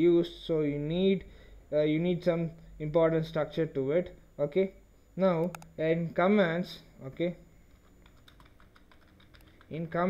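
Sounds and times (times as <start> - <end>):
man talking: 0.0 - 7.4, 9.7 - 10.0
keyboard key clicks: 7.9 - 9.9.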